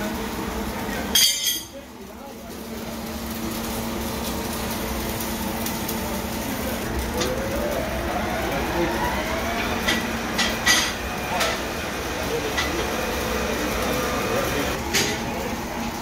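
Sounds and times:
steady machinery hum: 0.0s - 16.0s
motor winding up in pitch: 6.9s - 9.9s.

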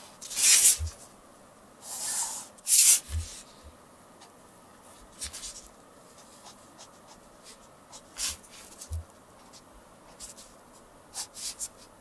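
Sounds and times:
pen scratching on paper: 0.3s - 1.0s, 5.2s - 11.9s.

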